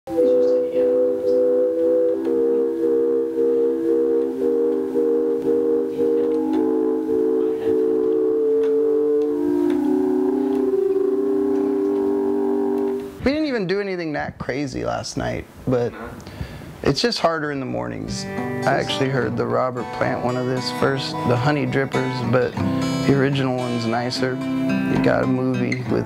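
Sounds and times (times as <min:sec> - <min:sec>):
keyboard organ chords: 0:00.1 - 0:13.3, 0:17.8 - 0:26.0.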